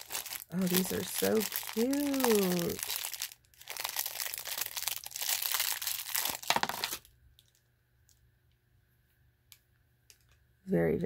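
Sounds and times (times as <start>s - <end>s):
plastic bag crinkling: 0.0s - 7.6s.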